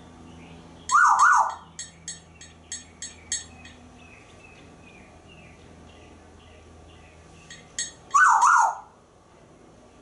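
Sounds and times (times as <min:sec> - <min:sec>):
parrot whistling siren-like swoop: 0:00.9 - 0:01.6, 0:08.1 - 0:08.9.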